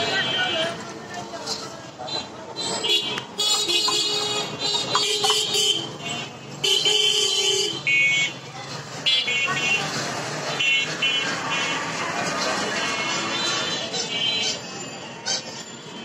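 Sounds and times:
traffic and street noise: 0.0s - 16.0s
vehicle horns honking: 2.1s - 8.4s.

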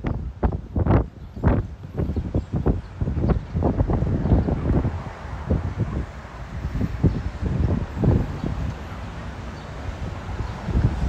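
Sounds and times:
street traffic: 0.0s - 11.0s
wind buffeting microphone: 0.0s - 11.0s.

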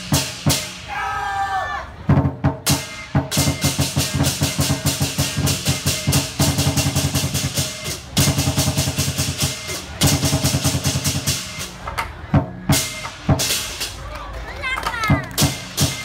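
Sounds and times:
cymbals clashing: 0.0s - 1.0s, 2.6s - 11.9s, 12.6s - 14.0s, 15.3s - 16.0s
large drum beating fast: 2.1s - 11.4s.

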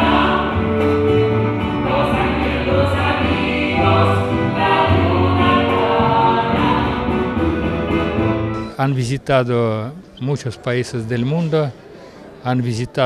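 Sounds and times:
women singing in harmony: 0.0s - 8.5s.

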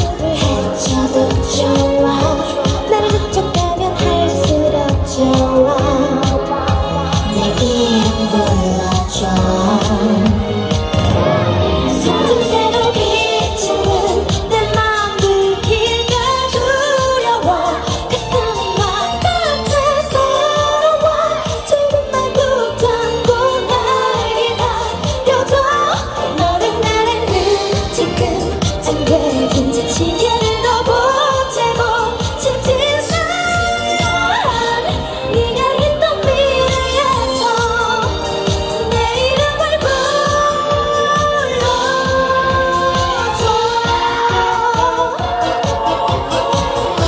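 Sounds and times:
pop backing track with beat: 0.0s - 47.0s
woman singing into microphone: 0.0s - 47.0s.

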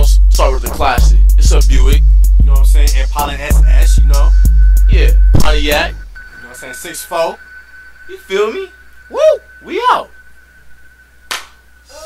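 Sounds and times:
faint high-pitched whine: 4.0s - 12.0s
sharp snap: 11.3s - 11.6s.

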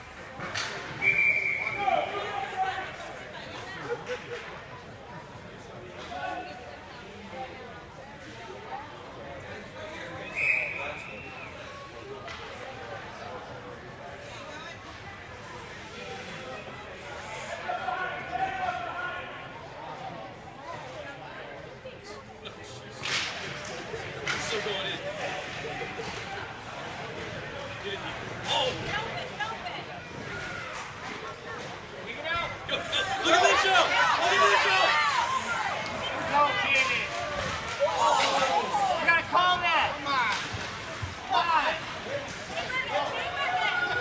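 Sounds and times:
voices and chatter: 0.0s - 44.0s
referee whistle blast: 1.0s - 1.8s
skate blades and sticks scraping ice: 35.8s - 44.0s.

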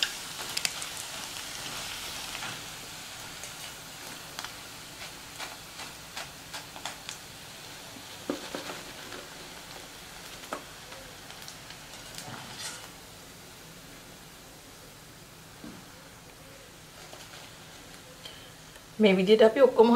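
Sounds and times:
sharp oil crackles: 0.0s - 13.1s
food deep-frying in oil: 0.0s - 15.6s.

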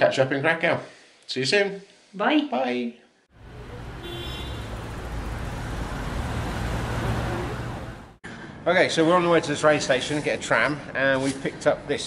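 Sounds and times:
city street traffic rumble: 3.3s - 8.6s.

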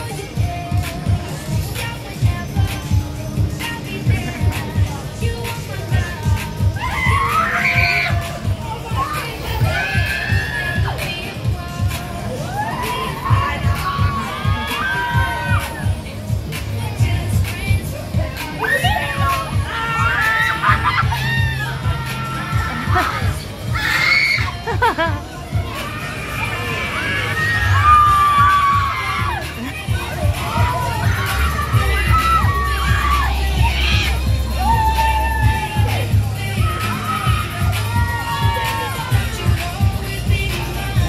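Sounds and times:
loud dance music: 0.0s - 41.0s
riders screaming: 6.6s - 11.3s, 12.4s - 16.0s, 18.6s - 39.7s.

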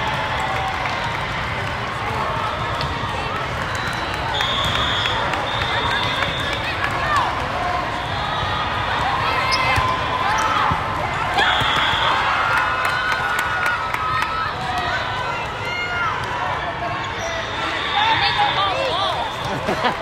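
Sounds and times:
crowd chatter: 0.0s - 20.0s
whistle blowing: 3.8s - 6.7s, 11.4s - 12.2s
volleyball hits: 8.9s - 12.4s.

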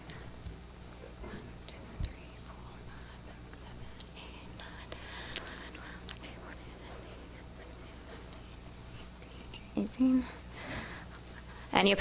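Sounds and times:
low steady hum: 0.0s - 12.0s
faint whispering and murmuring: 1.0s - 10.5s.

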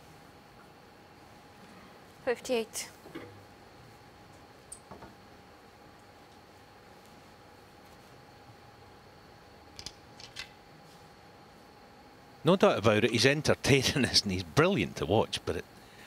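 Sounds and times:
faint electrical hum: 0.0s - 16.0s.

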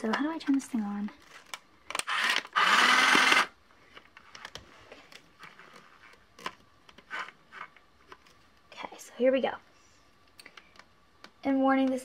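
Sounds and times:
toy sewing machine motor running: 2.0s - 3.5s.

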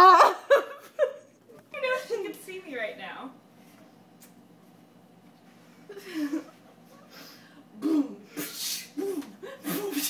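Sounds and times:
sharp intake of breath: 8.3s - 10.0s.

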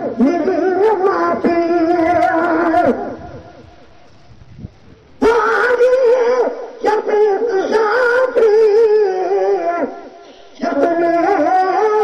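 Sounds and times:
man singing with vibrato: 0.0s - 4.1s, 5.0s - 12.0s.

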